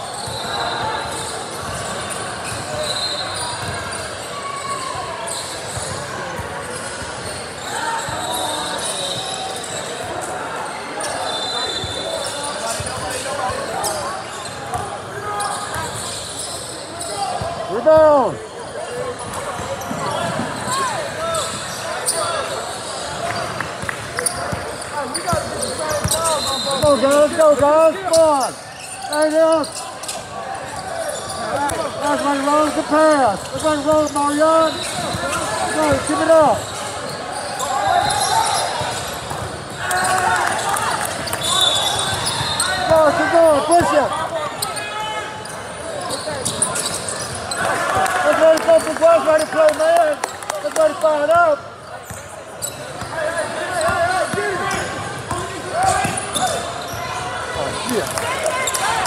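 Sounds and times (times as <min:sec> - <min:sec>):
spectators' voices: 0:00.0 - 0:59.0.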